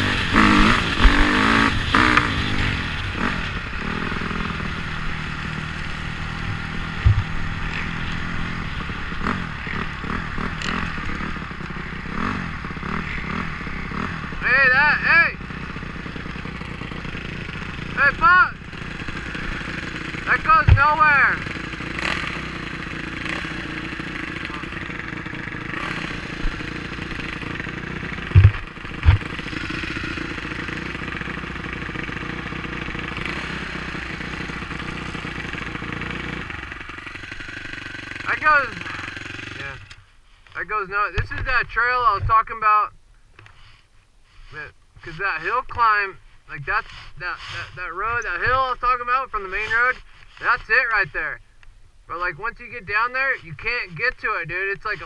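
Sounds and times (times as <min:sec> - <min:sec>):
sharp thumps: 0:00.0 - 0:03.4, 0:05.9 - 0:09.0, 0:19.0 - 0:22.4, 0:23.4 - 0:30.6, 0:41.1 - 0:42.4
dirt bike engine running: 0:00.0 - 0:42.8, 0:44.5 - 0:55.0.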